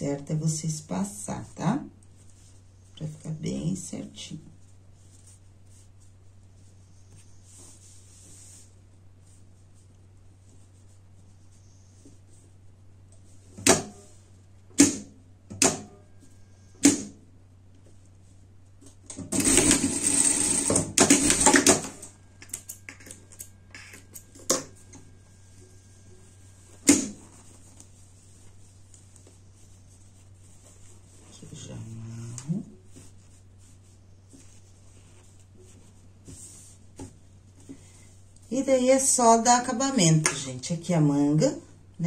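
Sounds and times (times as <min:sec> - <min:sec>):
faint steady hum: 0:00.0 - 0:42.0
sewing machine stitching: 0:19.2 - 0:22.1.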